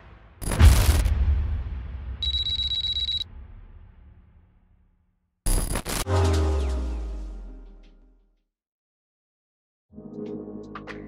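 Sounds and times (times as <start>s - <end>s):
deep boom hit: 0.0s - 5.1s.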